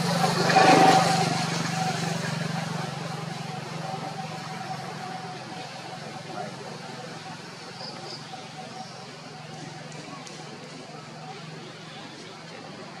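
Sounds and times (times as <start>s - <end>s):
vehicle engine humming: 0.0s - 13.0s
faint background voices: 3.7s - 13.0s.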